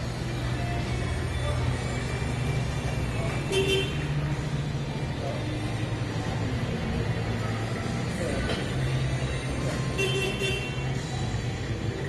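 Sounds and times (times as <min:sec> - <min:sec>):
engine rumbling: 0:00.0 - 0:12.0.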